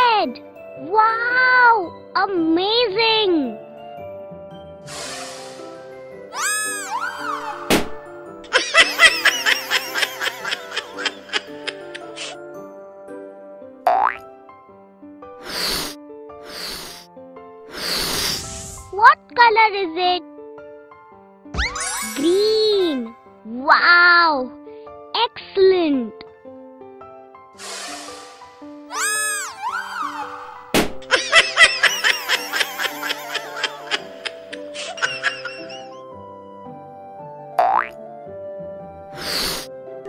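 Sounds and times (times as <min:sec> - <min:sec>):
light children's music: 0:00.0 - 0:40.0
cartoon character giggling: 0:08.5 - 0:12.3, 0:31.1 - 0:35.9
cartoon rising pitch glide: 0:21.6 - 0:22.4.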